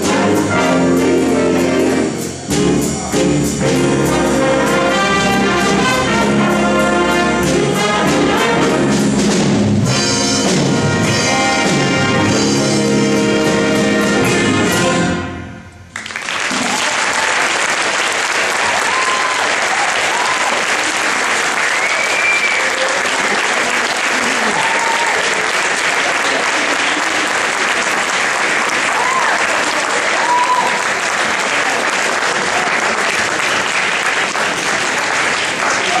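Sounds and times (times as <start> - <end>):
audience applauding: 15.9 - 36.0
audience whooping: 16.0 - 28.0, 28.6 - 33.5, 35.6 - 36.0.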